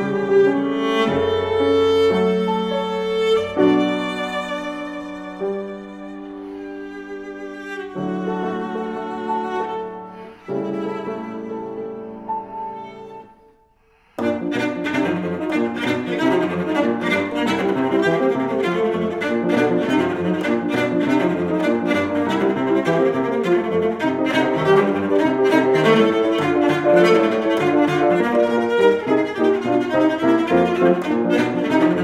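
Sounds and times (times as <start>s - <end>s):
cello: 0.0s - 32.0s
piano: 0.0s - 32.0s.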